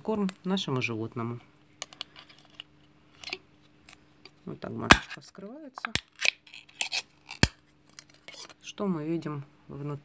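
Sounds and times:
tin lid scraping and tearing: 0:01.9 - 0:04.0, 0:04.9 - 0:08.6.

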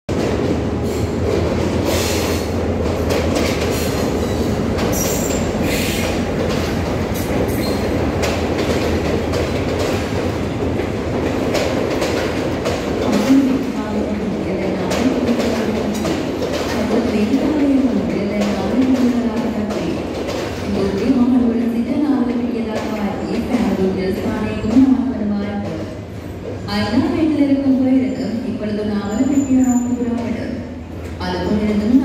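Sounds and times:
train rumbling and wheels clacking: 0:00.1 - 0:32.0
train wheel squeals: 0:03.8 - 0:06.1, 0:07.5 - 0:07.9, 0:29.1 - 0:30.0.

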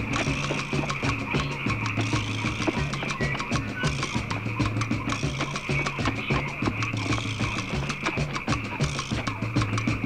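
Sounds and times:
fast percussion beat: 0:00.0 - 0:10.0
repeating bass line: 0:00.0 - 0:10.0.

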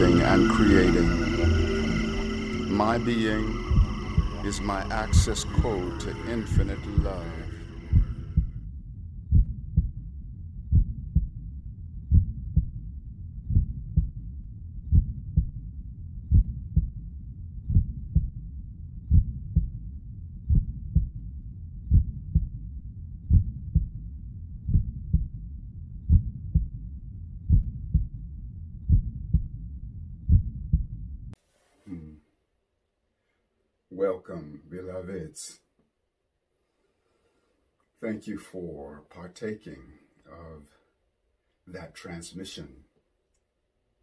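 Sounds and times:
steady low drone: 0:00.0 - 0:08.6
slow heartbeat thumps: 0:00.0 - 0:31.3.

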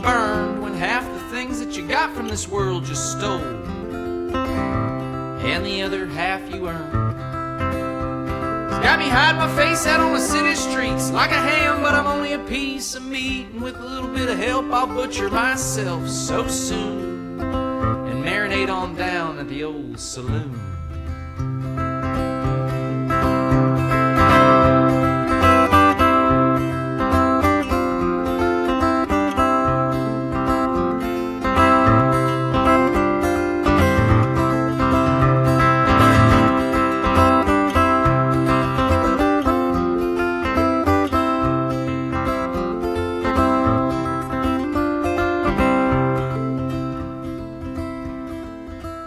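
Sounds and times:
acoustic guitar picked melody: 0:00.0 - 0:49.0.

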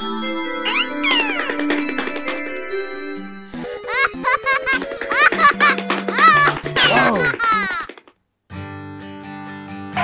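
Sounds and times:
cartoon baby giggling: 0:00.6 - 0:01.7, 0:03.7 - 0:07.9.

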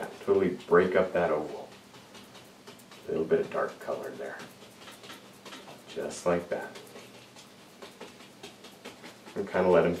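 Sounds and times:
paintbrush dabbing on canvas: 0:00.0 - 0:10.0.

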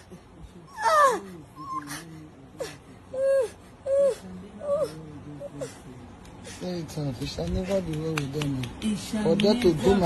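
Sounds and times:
boy moaning in pain: 0:00.7 - 0:05.7.

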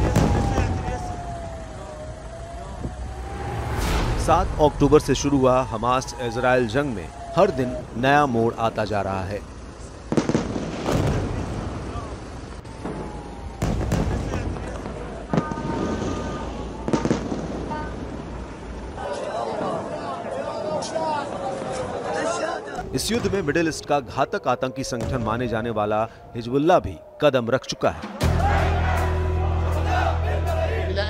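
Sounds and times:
sharp bangs: 0:00.0 - 0:01.4, 0:02.9 - 0:06.2
low rumble with rising tone: 0:00.2 - 0:08.0
short whoosh: 0:03.0 - 0:05.4.

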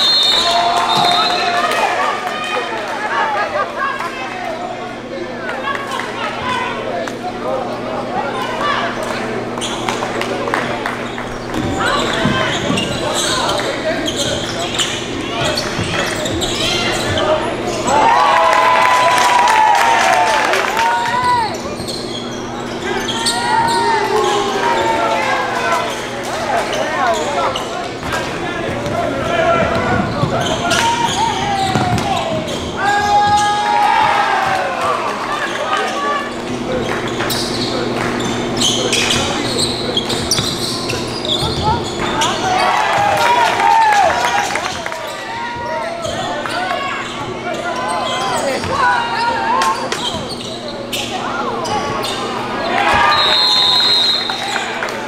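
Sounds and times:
sneakers squeaking: 0:00.0 - 0:02.7, 0:04.2 - 0:55.0
players calling out: 0:00.0 - 0:55.0
basketball dribbling: 0:31.6 - 0:32.5.

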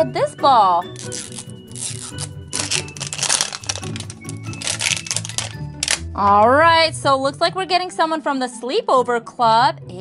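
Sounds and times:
background music: 0:00.0 - 0:10.0
plastic wrapping crinkling and tearing: 0:00.9 - 0:06.1.

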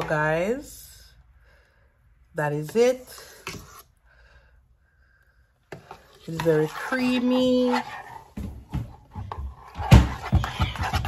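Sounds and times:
metal spoon stirring porridge in pot: 0:02.6 - 0:04.0, 0:05.7 - 0:11.0.

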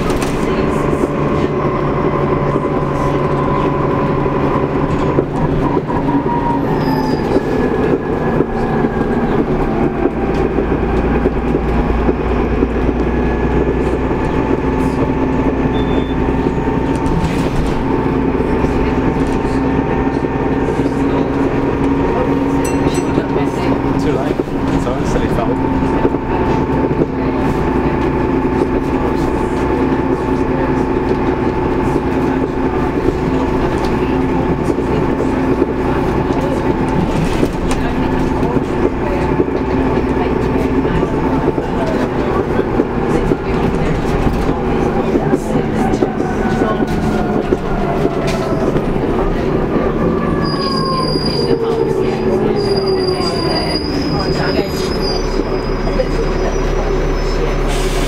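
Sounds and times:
bus engine drone with whine: 0:00.0 - 0:58.0
high brake squeals: 0:06.1 - 0:07.4, 0:15.7 - 0:16.2, 0:50.4 - 0:51.8, 0:52.4 - 0:58.0.

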